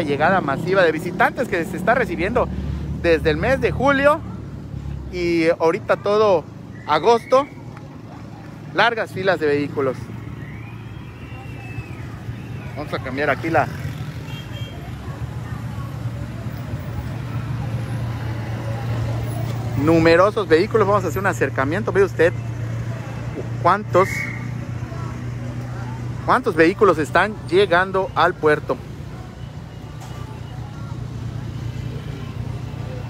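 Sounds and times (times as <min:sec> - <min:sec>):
car engines rumbling in traffic: 0:00.0 - 0:33.0.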